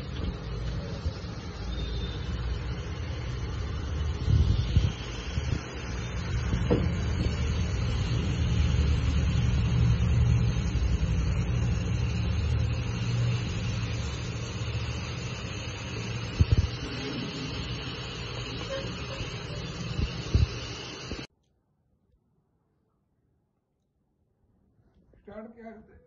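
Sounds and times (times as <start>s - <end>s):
food frying in a pan: 0.0s - 21.3s
low rumble: 2.3s - 18.5s
knocks: 6.7s - 7.0s.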